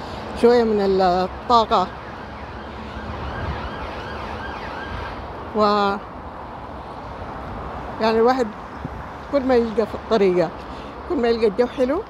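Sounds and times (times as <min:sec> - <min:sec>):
road traffic rumble: 0:00.0 - 0:12.0
faint emergency siren: 0:01.6 - 0:05.4.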